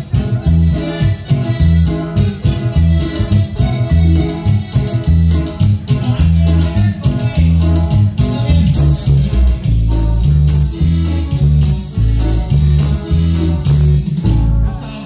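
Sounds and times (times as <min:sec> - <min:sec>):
live band dance music: 0:00.0 - 0:15.0.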